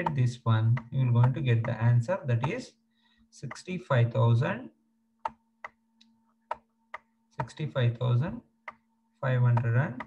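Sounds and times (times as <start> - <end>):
input device clicks: 0.0 - 2.6, 5.2 - 7.6.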